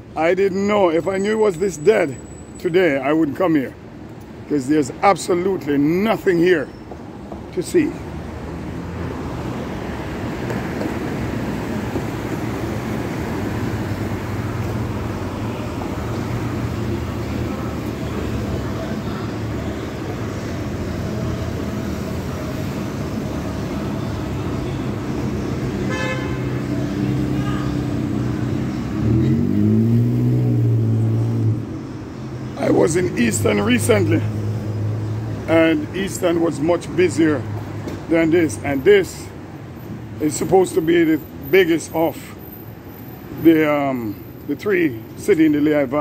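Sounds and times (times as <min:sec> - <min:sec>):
street traffic rumble: 0:00.0 - 0:46.0.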